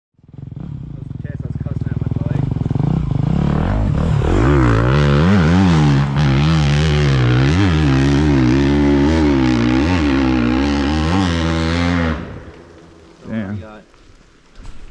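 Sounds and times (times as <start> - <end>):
dirt bike engine revving: 0.2 - 13.6.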